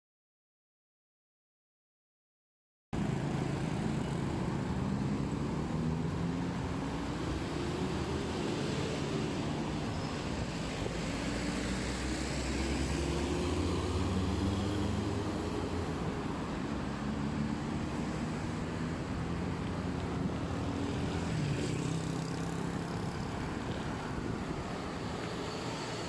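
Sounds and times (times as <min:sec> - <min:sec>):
car engines: 0:03.0 - 0:26.0.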